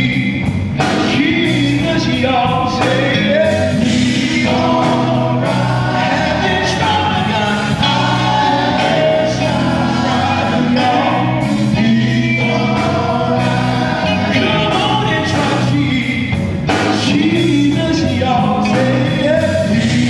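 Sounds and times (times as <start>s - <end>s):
male vocal group singing gospel: 0.0s - 20.0s.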